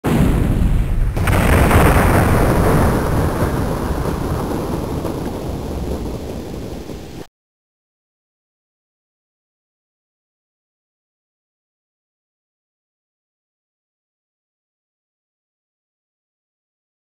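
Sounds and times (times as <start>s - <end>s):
low thunder rumble: 0.0s - 7.3s
thunder crack: 0.0s - 7.3s.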